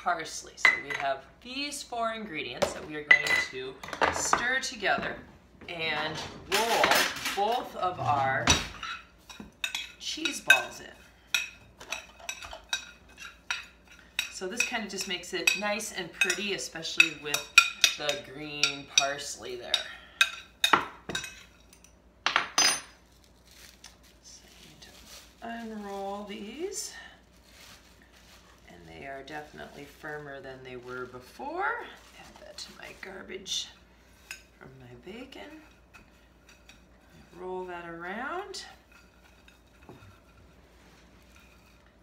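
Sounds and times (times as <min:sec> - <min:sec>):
faint low room hum: 0:00.0 - 0:42.0.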